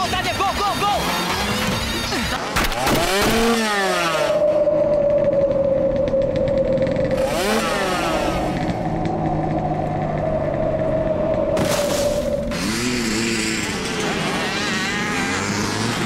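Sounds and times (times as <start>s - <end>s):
motorcycle engines revving: 0.0s - 16.0s
steady high drone: 3.6s - 15.9s.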